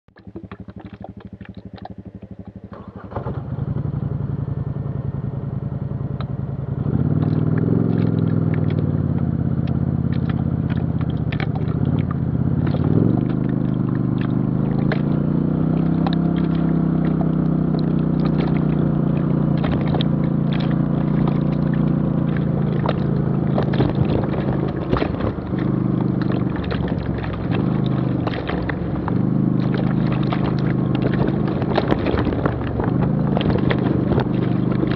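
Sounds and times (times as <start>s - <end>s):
atv engine running: 0.2s - 34.9s
gravel crunching under tyres: 6.1s - 34.9s.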